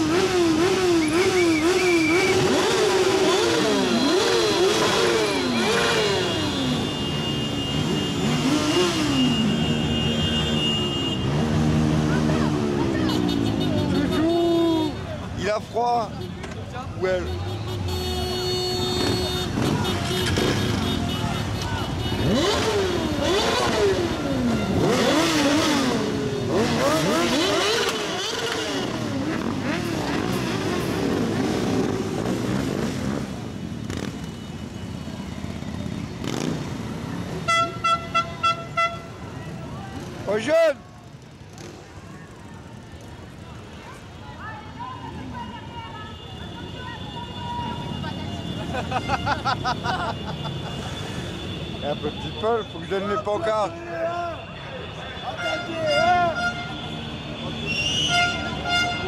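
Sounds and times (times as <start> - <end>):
crowd: 0.0 - 59.0
motorcycle engines revving: 0.0 - 59.0.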